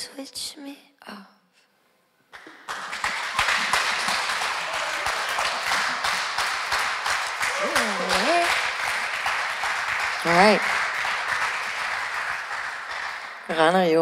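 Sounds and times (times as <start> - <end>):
audience applauding: 2.4 - 14.0
person cheering: 4.5 - 5.6, 7.4 - 8.6
live band playing: 7.5 - 8.6.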